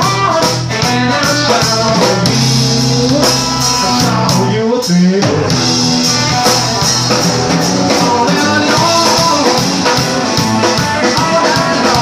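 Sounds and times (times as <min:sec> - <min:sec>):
drum kit beat: 0:00.0 - 0:12.0
electric guitar: 0:00.0 - 0:12.0.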